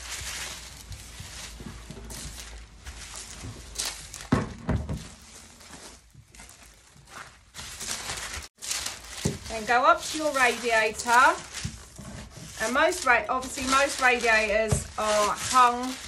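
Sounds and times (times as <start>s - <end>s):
plastic sheet rustling: 0.0s - 16.0s.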